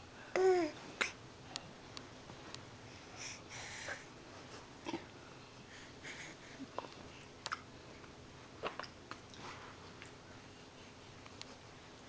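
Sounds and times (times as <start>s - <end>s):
baby babbling: 0.4s - 1.1s.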